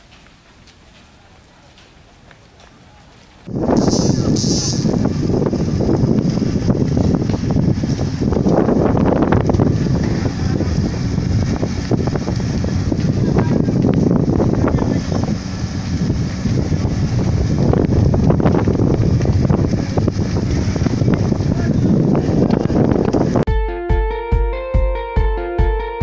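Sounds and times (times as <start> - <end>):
large fire burning and crackling: 0.0 - 23.5
wind buffeting microphone: 0.0 - 23.5.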